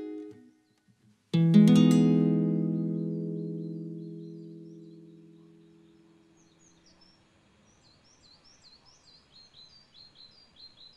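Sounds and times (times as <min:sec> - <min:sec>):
small birds chirping: 0:00.0 - 0:10.9
nylon-string guitar chord ringing: 0:01.4 - 0:06.3.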